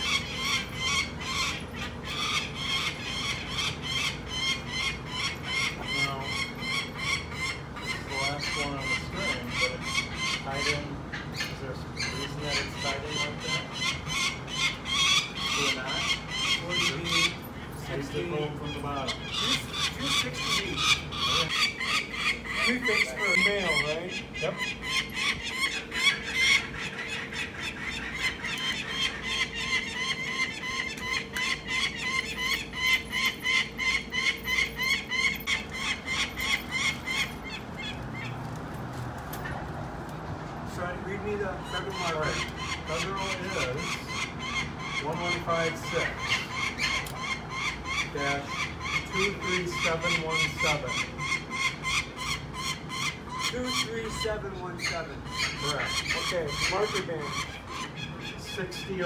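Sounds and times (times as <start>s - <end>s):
falcon chick calling: 0.0s - 38.5s, 41.0s - 59.0s.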